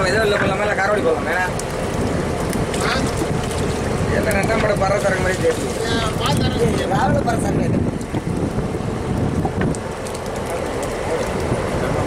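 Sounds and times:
low rumble: 0.0 - 12.0
wind buffeting microphone: 0.0 - 12.0.

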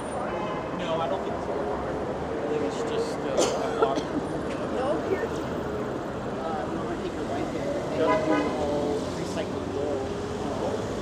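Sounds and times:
pedestrians talking: 0.0 - 11.0
road traffic: 0.0 - 11.0.

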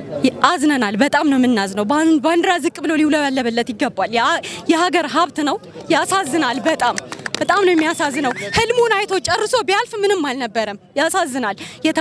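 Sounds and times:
woman talking into a microphone: 0.2 - 12.0.

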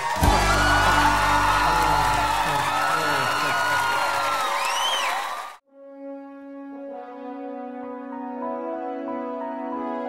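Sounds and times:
crowd whooping and yelling: 0.0 - 5.6
music with bass line: 0.1 - 2.4.

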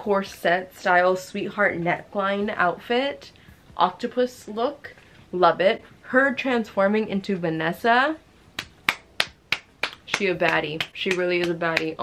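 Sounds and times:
fingers snapping: 8.6 - 11.9.

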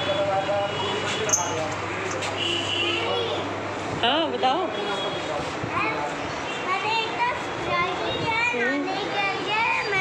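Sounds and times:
hubbub of busy room: 0.0 - 10.0
child talking: 5.7 - 10.0.

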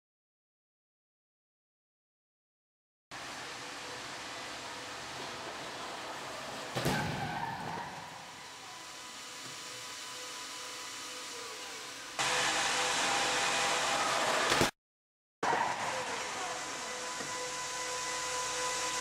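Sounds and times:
loud car crash impact: 6.7 - 8.2.

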